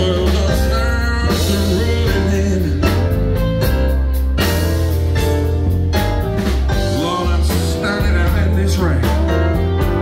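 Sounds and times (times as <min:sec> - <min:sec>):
drums: 0:00.0 - 0:10.0
heavy bass line: 0:00.0 - 0:10.0.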